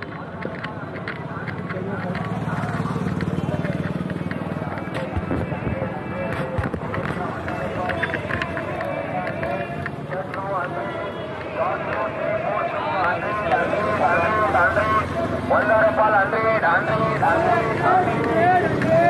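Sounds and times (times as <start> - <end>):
chatter of passers-by: 0.0 - 19.0
passing traffic: 0.0 - 19.0
vehicle engine hum: 0.0 - 19.0.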